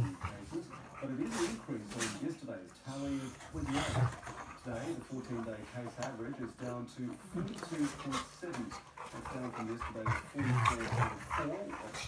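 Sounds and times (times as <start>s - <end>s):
television news voice: 0.0s - 12.0s.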